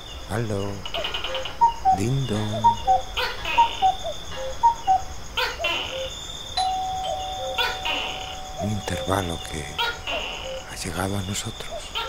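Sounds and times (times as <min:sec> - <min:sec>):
steady high trill: 0:01.4 - 0:05.0, 0:06.6 - 0:10.8
two-note chimes: 0:06.6 - 0:09.8.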